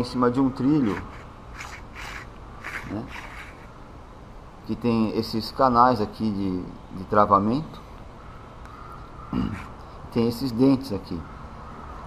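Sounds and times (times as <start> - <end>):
plastic pedal scraping on rail: 0.8 - 3.7.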